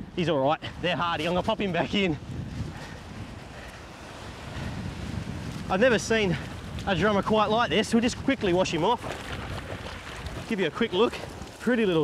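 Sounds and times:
wind buffeting microphone: 0.0s - 12.0s
small waves washing on sand: 0.7s - 12.0s.

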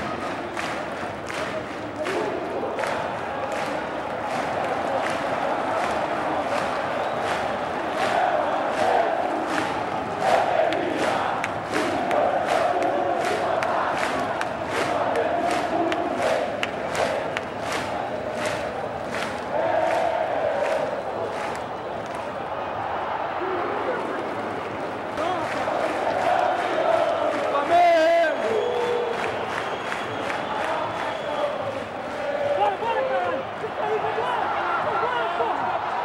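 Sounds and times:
stadium crowd chanting: 0.0s - 36.0s.

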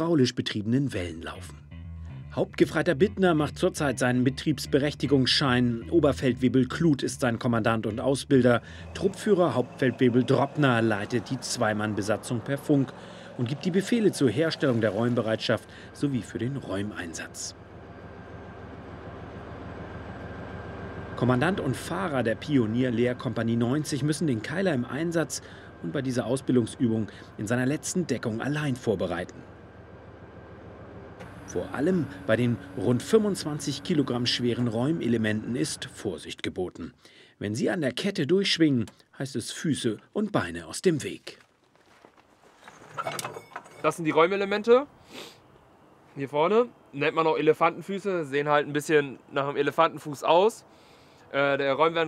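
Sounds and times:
man speaking: 2.4s - 17.5s, 21.2s - 29.4s, 31.5s - 41.4s, 51.3s - 52.0s
diesel engine running: 8.0s - 36.3s.

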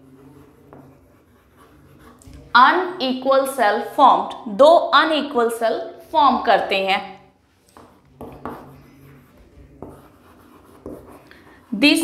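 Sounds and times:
chalk writing on blackboard: 0.0s - 2.5s, 7.5s - 12.0s.

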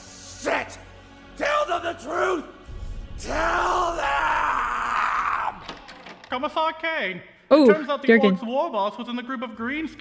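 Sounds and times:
man yelling: 3.2s - 5.7s.

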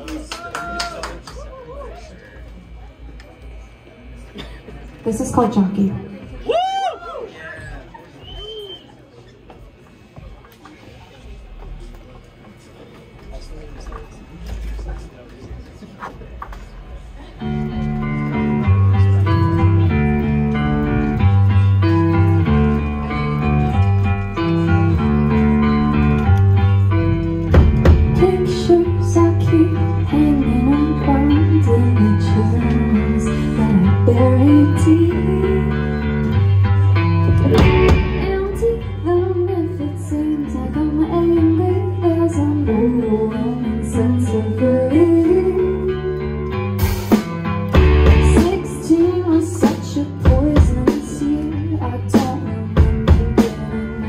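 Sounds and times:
room murmur: 0.0s - 38.2s
rock band playing a riff: 17.3s - 54.0s.

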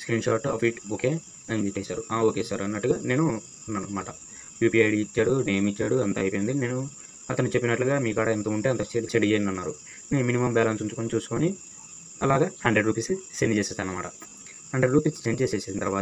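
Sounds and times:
person talking: 0.0s - 11.6s, 12.2s - 16.0s
steady high-pitched hiss: 0.0s - 16.0s.

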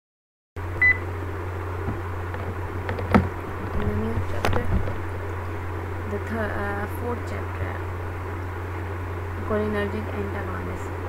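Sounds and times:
low background hum: 0.6s - 11.0s.

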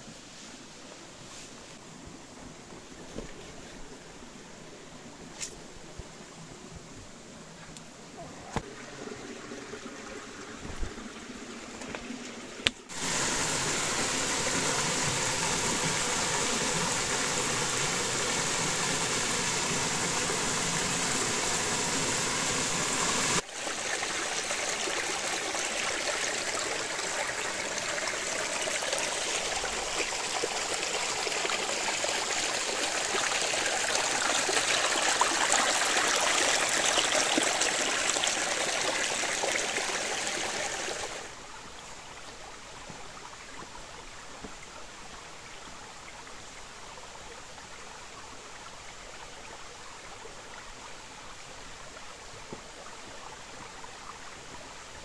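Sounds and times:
stream running over rocks: 0.0s - 55.0s
waterfall splashing into pool: 12.7s - 41.3s.

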